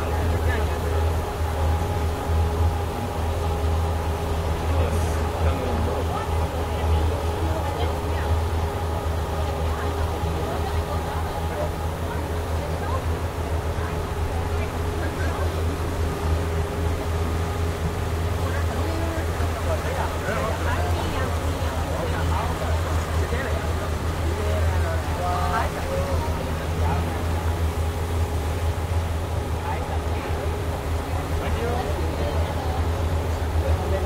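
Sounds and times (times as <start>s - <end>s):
people talking indistinctly: 0.0s - 34.0s
speedboat engine droning: 0.0s - 34.0s.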